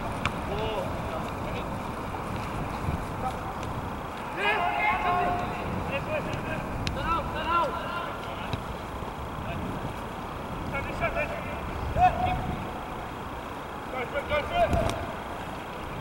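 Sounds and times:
steady background hiss: 0.0s - 16.0s
players shouting calls: 3.0s - 15.5s.

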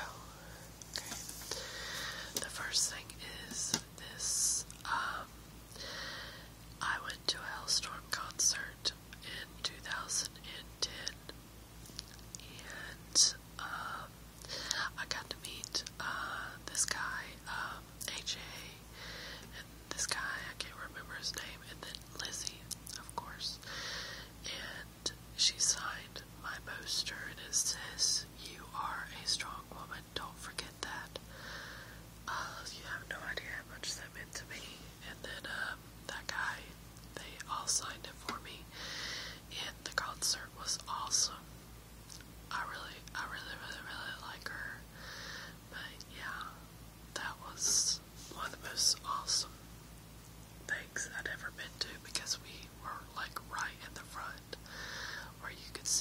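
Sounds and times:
woman whispering: 0.0s - 5.4s, 6.8s - 11.4s, 12.0s - 18.9s, 19.5s - 23.7s, 24.4s - 31.2s, 32.3s - 38.8s, 39.4s - 41.4s, 42.5s - 44.9s, 45.7s - 49.6s, 50.7s - 56.0s.

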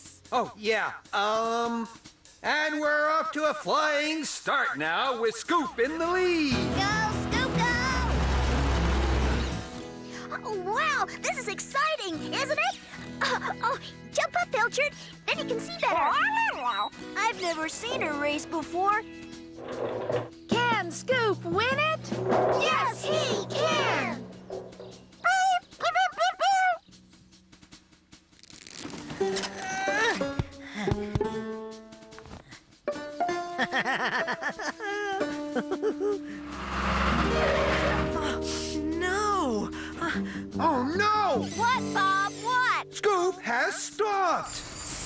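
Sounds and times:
background music: 0.0s - 44.2s.

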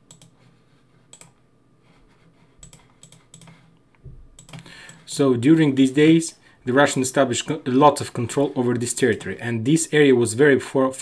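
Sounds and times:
mouse and keyboard clicks: 2.6s - 3.6s.

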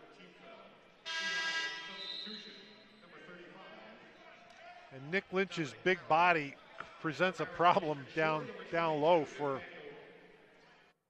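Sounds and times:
gym background noise: 0.0s - 10.6s
arena horn buzzing: 1.1s - 2.0s.

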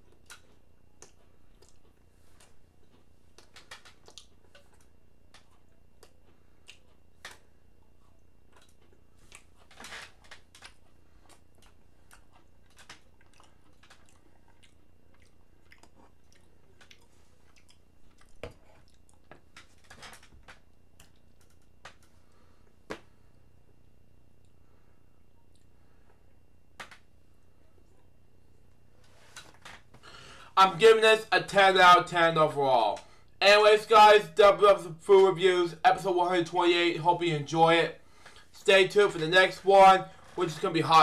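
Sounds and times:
person chewing crunchy cookies: 0.0s - 26.4s.

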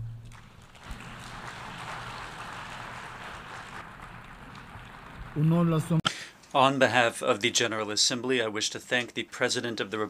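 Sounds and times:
audience applauding: 0.2s - 6.0s.

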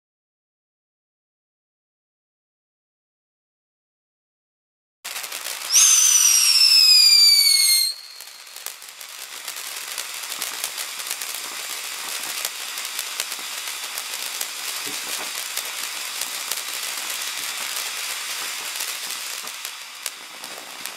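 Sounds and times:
firework fountain hissing: 5.1s - 20.9s
whistle falling in pitch: 5.7s - 8.4s
small crackles: 7.6s - 20.9s.

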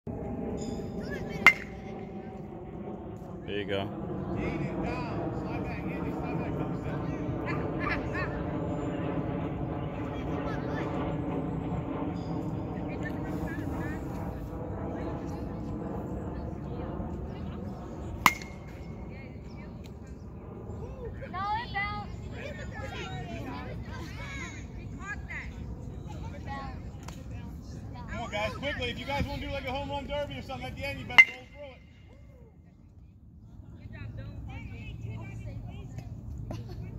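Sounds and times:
steady low rumble: 0.1s - 28.0s
bat hitting ball ping: 1.3s - 2.0s, 18.2s - 18.8s, 31.2s - 31.6s.

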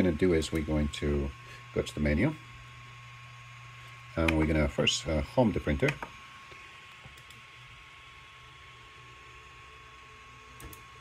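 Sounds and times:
printer fans running: 0.0s - 11.0s
small clicks: 7.1s - 7.4s.

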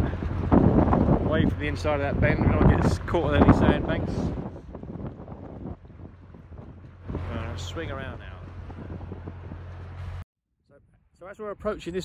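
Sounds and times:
boat engine humming: 0.0s - 10.2s
wind buffeting microphone: 0.0s - 10.2s.

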